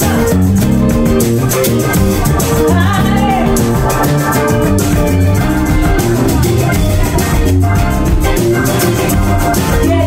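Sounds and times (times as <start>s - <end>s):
live band playing: 0.0s - 10.0s
woman singing: 9.7s - 10.0s.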